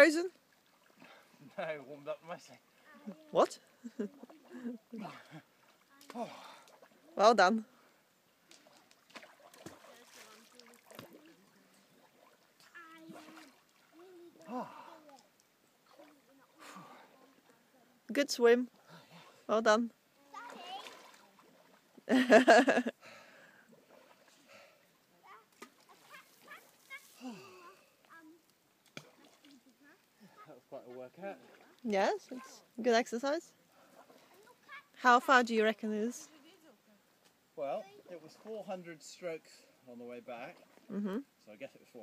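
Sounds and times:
water splashing from swimming: 0.1s - 18.0s, 18.6s - 35.2s
person laughing loudly: 22.1s - 22.9s.

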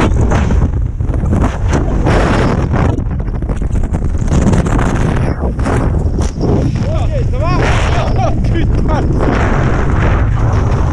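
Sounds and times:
rushing air on microphone: 0.0s - 10.9s.

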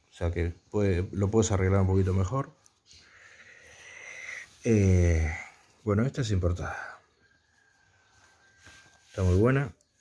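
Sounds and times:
faint rustle: 7.8s - 10.0s.

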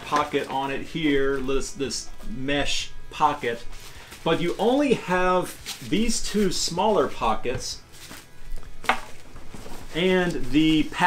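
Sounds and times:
fabric rustling: 7.8s - 11.0s.

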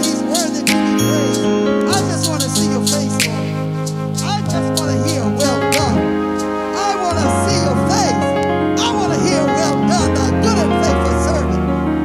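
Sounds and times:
person speaking into microphone: 0.0s - 3.6s, 4.2s - 11.7s
electric keyboard chords: 0.0s - 12.0s.

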